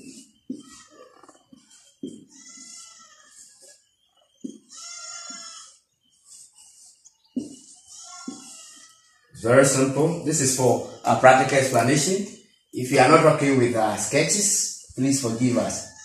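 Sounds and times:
marker squeaking on whiteboard: 0.0s - 16.0s.

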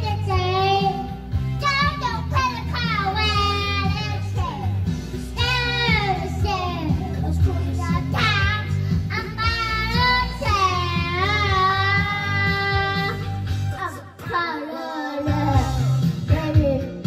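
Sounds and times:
child singing: 0.0s - 4.8s, 5.4s - 13.2s, 13.8s - 17.0s
backing music with bass line: 0.0s - 17.0s.

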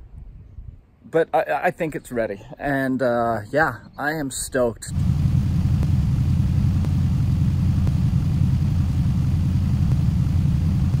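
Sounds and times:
car engine idling: 4.9s - 11.0s.

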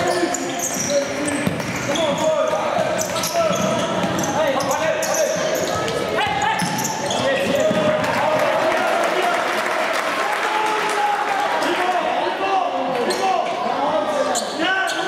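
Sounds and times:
shoes squeaking on floor: 0.0s - 8.0s, 14.2s - 15.0s
players calling out in hall: 0.0s - 15.0s.

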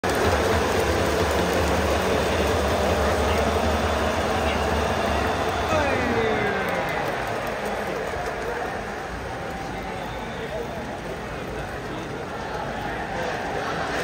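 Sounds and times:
stadium crowd din: 0.0s - 14.0s
fans calling out: 0.1s - 14.0s.

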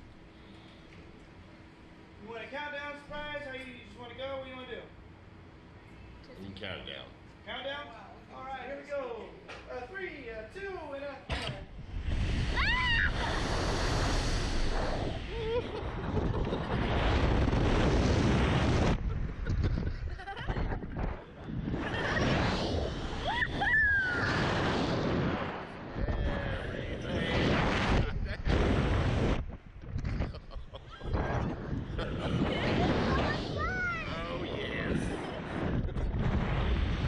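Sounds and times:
wind rushing over microphone: 11.6s - 37.0s
riders screaming: 12.5s - 13.4s, 23.2s - 24.4s
riders laughing: 15.2s - 16.8s, 18.9s - 22.2s, 30.1s - 31.2s, 31.8s - 32.8s.

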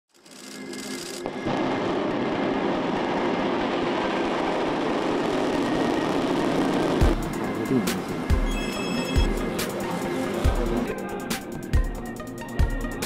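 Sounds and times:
rocket engines roaring: 0.6s - 11.7s.

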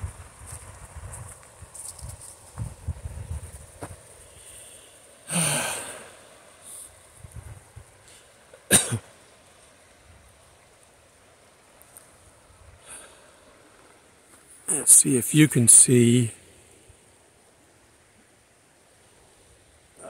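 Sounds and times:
man exhaling: 4.4s - 6.8s.

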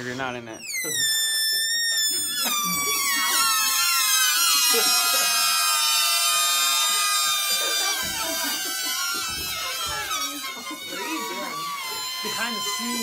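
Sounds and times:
balloons squealing: 0.0s - 13.0s.

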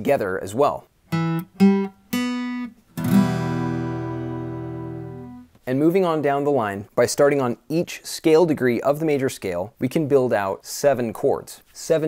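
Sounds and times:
acoustic guitar chord ringing: 1.1s - 5.5s.

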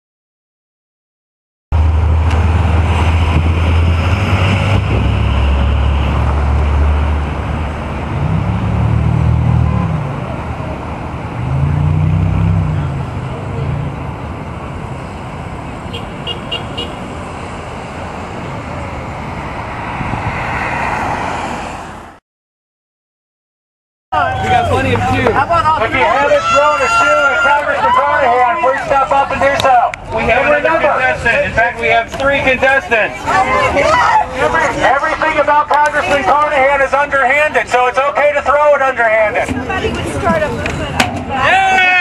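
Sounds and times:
road traffic rumble: 1.7s - 22.2s, 24.1s - 42.0s
vehicles passing: 1.7s - 22.2s, 24.1s - 42.0s.

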